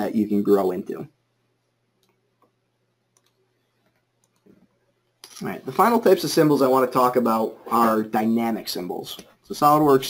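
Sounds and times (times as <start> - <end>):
computer mouse clicks: 2.0 - 5.4.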